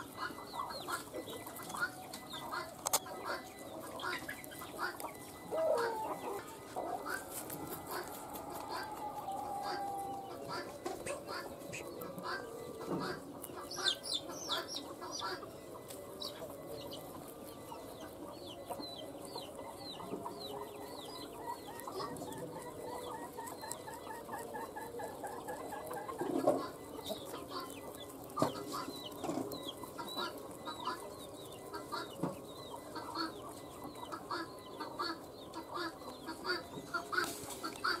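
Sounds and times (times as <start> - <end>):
chickens clucking: 0.0 - 38.0
rabbits chewing grass: 0.0 - 38.0.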